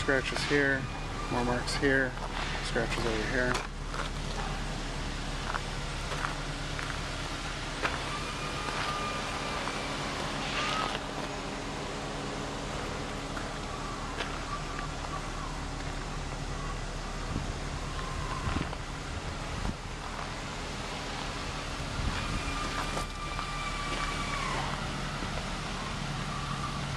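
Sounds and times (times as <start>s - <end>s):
car engine idling: 0.0s - 26.9s
faint high whistling: 8.0s - 11.0s, 13.6s - 15.7s.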